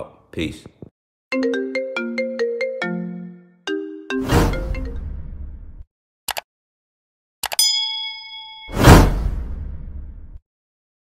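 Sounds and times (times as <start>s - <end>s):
phone ringtone melody: 1.3s - 4.2s.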